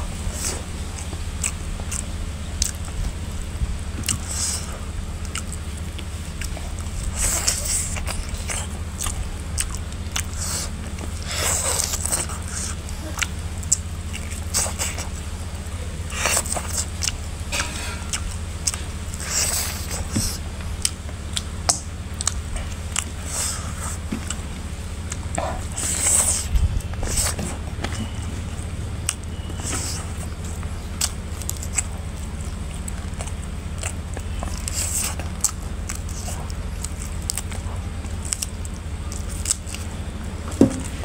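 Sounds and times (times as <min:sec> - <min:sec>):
chewing smacks: 0:00.0 - 0:41.0
steady low hum: 0:00.0 - 0:41.0
wet slurping while eating: 0:04.0 - 0:21.4, 0:22.1 - 0:39.9.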